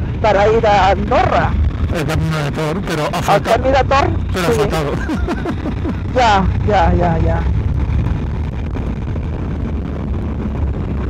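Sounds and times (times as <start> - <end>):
motorcycle engine rumble: 0.0 - 11.0
wind on microphone: 0.0 - 11.0
man talking: 1.9 - 5.9.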